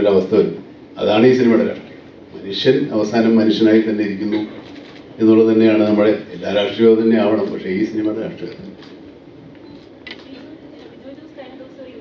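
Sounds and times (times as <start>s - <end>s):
man speaking through a microphone: 0.0s - 8.8s.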